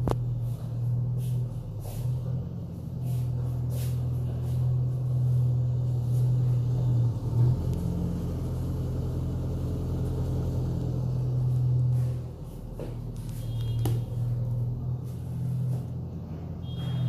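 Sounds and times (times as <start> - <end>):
diesel engine rumbling: 0.0 - 17.0.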